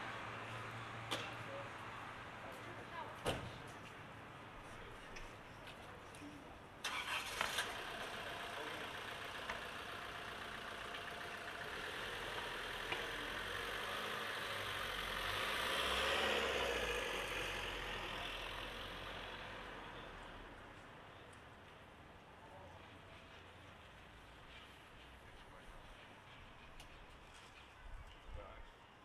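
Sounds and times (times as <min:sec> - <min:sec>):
vehicle engine starting and running: 0:06.8 - 0:20.4.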